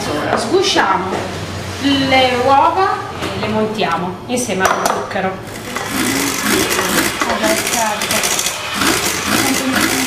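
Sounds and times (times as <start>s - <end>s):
stand mixer whirring: 5.4s - 10.0s.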